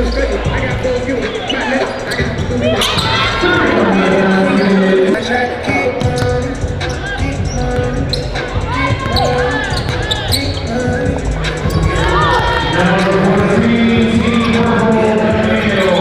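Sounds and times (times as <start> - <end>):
sneaker squeaks: 0.0 - 0.5, 1.1 - 5.1, 5.7 - 16.0
music with steady bass line: 0.0 - 4.4, 5.0 - 16.0.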